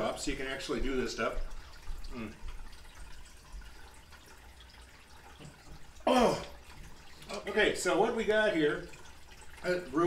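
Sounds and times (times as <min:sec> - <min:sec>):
man murmuring mm: 0:02.1 - 0:02.4, 0:06.1 - 0:06.5.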